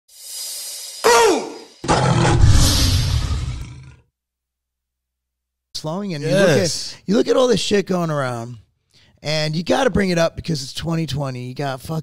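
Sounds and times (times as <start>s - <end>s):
tiger roar: 1.8s - 4.0s.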